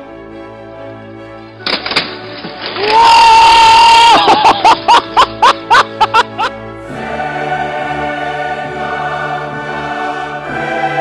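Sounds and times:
person yelling: 2.8s - 4.5s.

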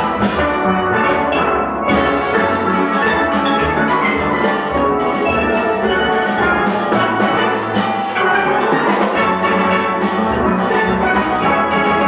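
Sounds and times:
drum kit: 0.0s - 12.0s
steel band playing: 0.0s - 12.0s.

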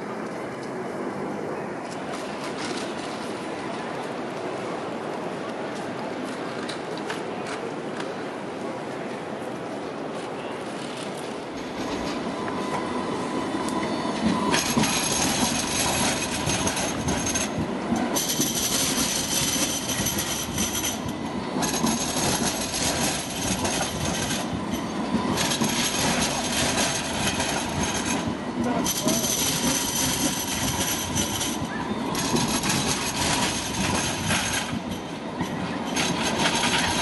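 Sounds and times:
tram wheels rumbling over rails: 0.0s - 37.0s
high wheel squeal: 11.6s - 37.0s.

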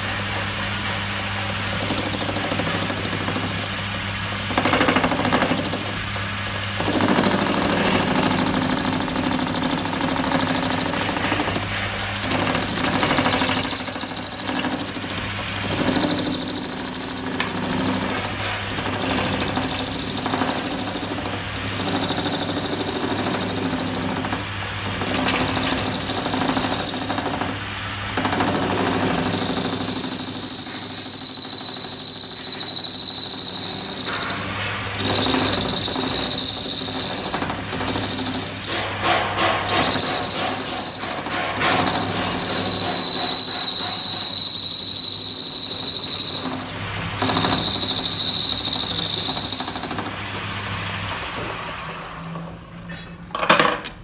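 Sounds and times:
metal lathe clattering: 6.8s - 27.6s, 28.2s - 50.1s
high-pitched squeal: 12.3s - 27.5s, 28.4s - 39.0s, 39.7s - 50.2s.

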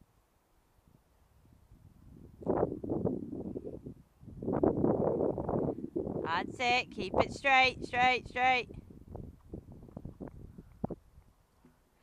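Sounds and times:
wind gusts on microphone: 0.8s - 11.4s.

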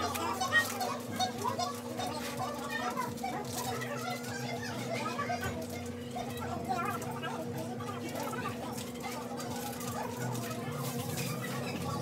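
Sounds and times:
children talking and calling out: 0.0s - 12.0s.

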